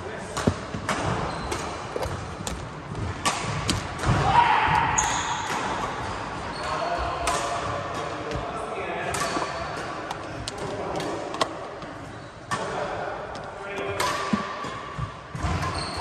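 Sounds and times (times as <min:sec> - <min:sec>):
racket striking shuttlecock: 0:00.3 - 0:04.2, 0:13.3 - 0:15.8
shoe squeaks on wooden floor: 0:01.2 - 0:02.2, 0:15.6 - 0:16.0.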